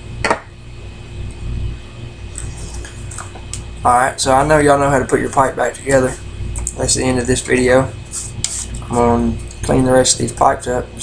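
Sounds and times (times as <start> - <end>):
faint whine: 0.0 - 11.0
low hum: 0.0 - 11.0.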